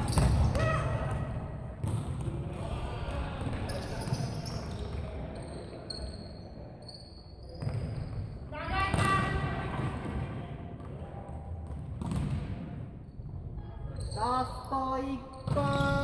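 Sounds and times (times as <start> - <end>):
players calling in echoing hall: 0.0 - 11.7, 12.3 - 16.0.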